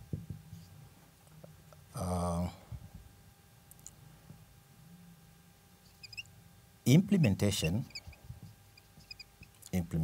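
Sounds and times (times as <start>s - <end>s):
marker squeaking on whiteboard: 5.9s - 6.2s, 7.8s - 8.2s, 8.8s - 9.5s.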